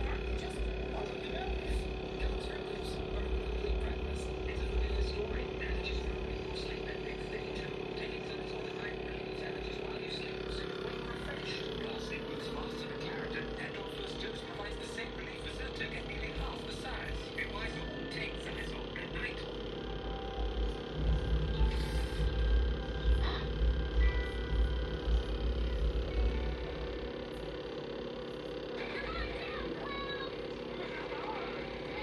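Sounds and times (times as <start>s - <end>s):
background music: 19.8s - 27.2s
low rumble: 20.8s - 27.3s.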